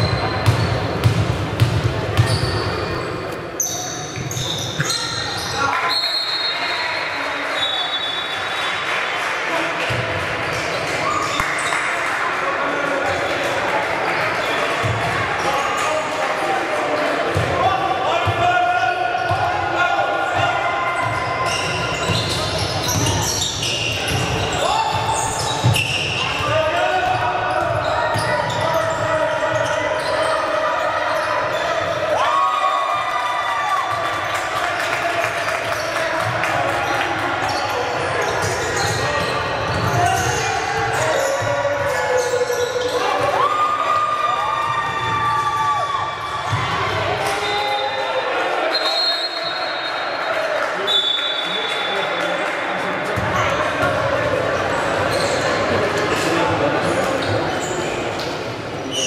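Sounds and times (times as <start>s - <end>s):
sneakers squeaking on floor: 0.0s - 8.8s, 9.9s - 11.9s, 20.2s - 32.1s, 35.7s - 43.7s, 53.2s - 59.0s
basketball dribbling: 0.4s - 2.4s.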